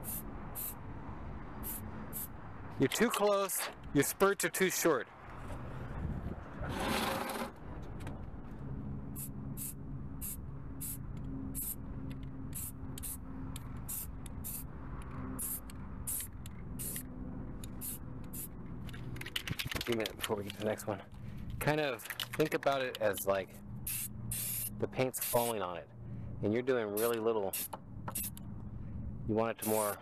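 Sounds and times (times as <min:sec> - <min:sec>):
aerosol spray can hissing: 0:23.9 - 0:25.5, 0:27.0 - 0:28.3.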